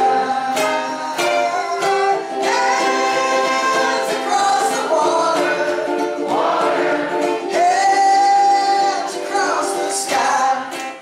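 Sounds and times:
ukulele ensemble strumming: 0:00.0 - 0:11.0
voices singing: 0:00.0 - 0:11.0.

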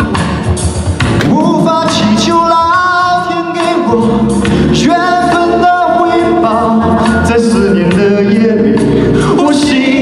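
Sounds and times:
man singing pop song through speakers: 0:01.2 - 0:10.0.

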